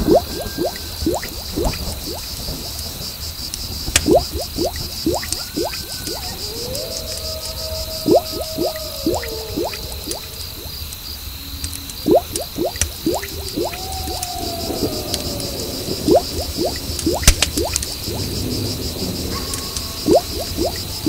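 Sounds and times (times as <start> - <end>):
bubble bloops: 0.0 - 2.2, 4.0 - 6.2, 8.0 - 10.8, 12.0 - 14.3, 16.0 - 18.3, 20.1 - 20.8
crickets chirping: 0.0 - 21.0.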